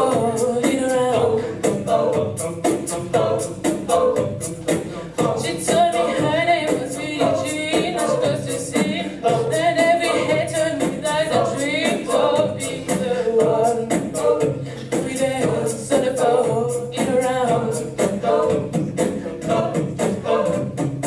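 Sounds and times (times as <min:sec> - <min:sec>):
backing vocal harmonies: 0:00.0 - 0:21.0
steady beat: 0:00.0 - 0:21.0
woman singing lead: 0:03.0 - 0:20.8.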